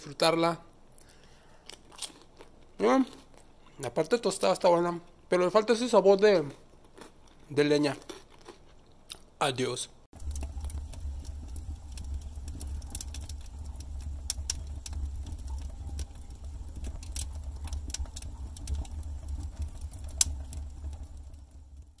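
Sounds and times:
wood fire crackling and popping: 10.1s - 22.0s
fire low rumble: 10.2s - 22.0s.

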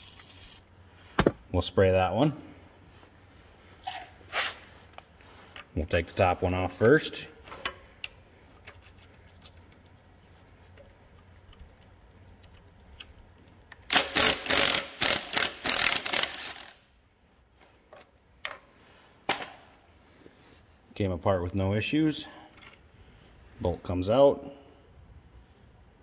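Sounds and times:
metallic clicking and scraping: 7.5s - 16.8s
wrench loosening rusty bolt: 13.8s - 16.7s.

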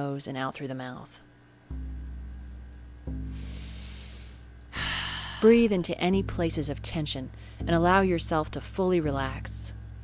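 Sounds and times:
deep low music note: 1.7s - 10.0s
slow deep nasal inhale: 3.3s - 5.5s.

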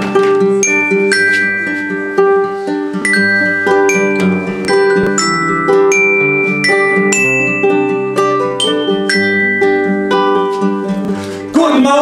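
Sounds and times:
strummed acoustic guitars: 0.0s - 12.0s
toy metallophone melody: 0.1s - 10.9s.

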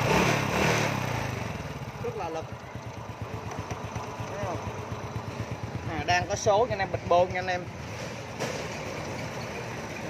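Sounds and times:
motorcycle engine idling: 1.1s - 10.0s.

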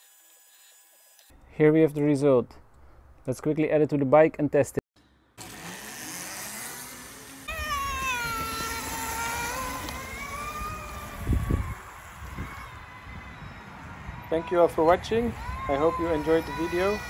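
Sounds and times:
electric motor whining: 5.4s - 17.0s.

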